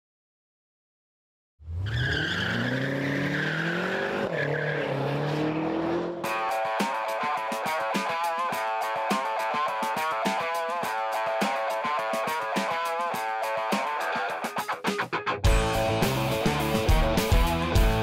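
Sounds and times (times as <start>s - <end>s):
car engine revving: 1.6s - 6.7s
music with driving beat: 6.2s - 18.0s.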